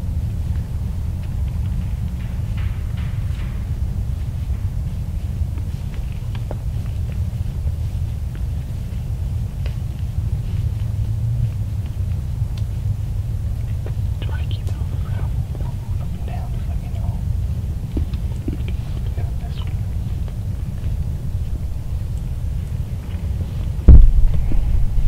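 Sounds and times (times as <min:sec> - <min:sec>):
steady low rumble: 0:00.0 - 0:25.0
soft whispering: 0:14.2 - 0:20.3.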